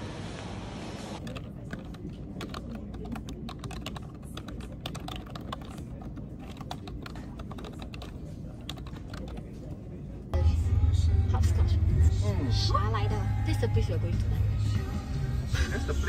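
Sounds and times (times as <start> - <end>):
typing on computer keyboard: 1.2 - 9.5.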